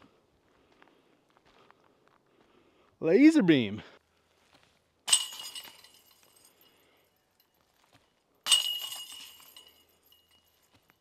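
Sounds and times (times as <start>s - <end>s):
disc hitting metal chains: 5.1s - 6.7s, 8.5s - 10.5s.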